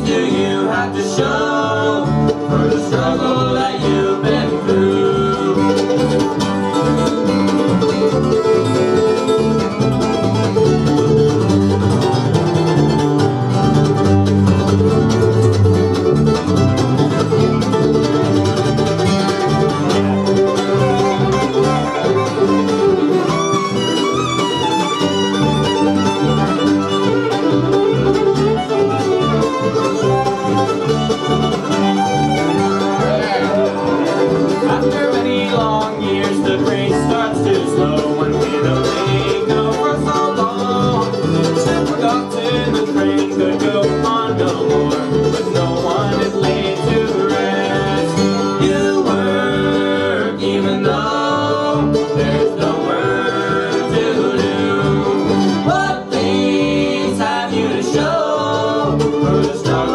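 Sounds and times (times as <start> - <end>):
bluegrass band playing: 0.0 - 59.9
upright bass beat: 0.1 - 49.5.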